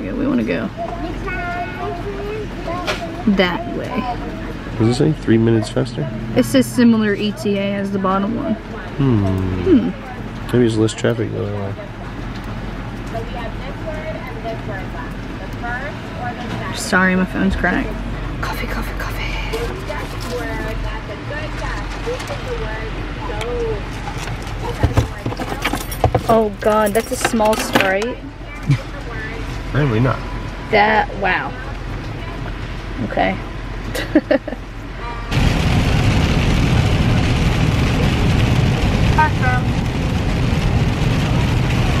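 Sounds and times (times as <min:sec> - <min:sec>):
faint indistinct voices: 0:00.0 - 0:33.9
road and engine rumble in car: 0:00.0 - 0:42.0.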